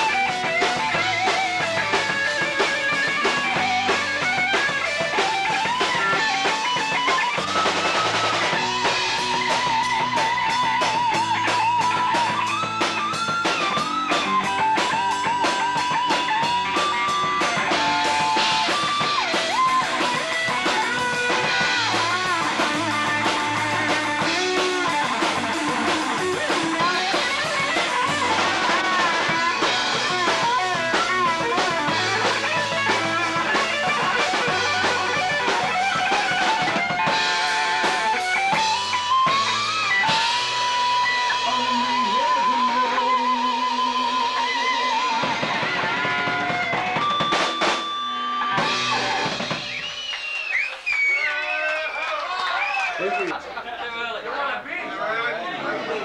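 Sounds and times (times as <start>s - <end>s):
bass guitar: 0.0s - 50.7s
drum kit: 0.0s - 51.0s
electric guitar solo: 0.0s - 51.1s.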